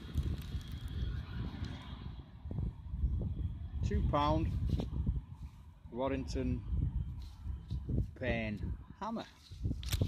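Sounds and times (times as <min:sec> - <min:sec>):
low rumble on microphone: 0:00.0 - 0:10.0
hand scraping soil and straw: 0:09.2 - 0:10.0
rustles and clicks: 0:09.4 - 0:10.0.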